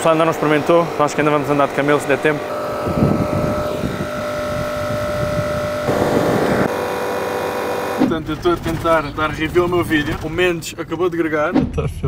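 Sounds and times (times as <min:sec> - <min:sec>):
air compressor motor humming: 0:00.0 - 0:08.9.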